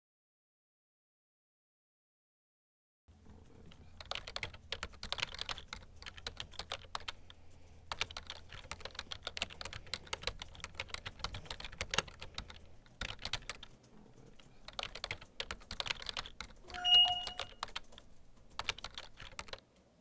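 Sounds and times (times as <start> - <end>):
fast typing on laptop keyboard: 3.3 - 19.6.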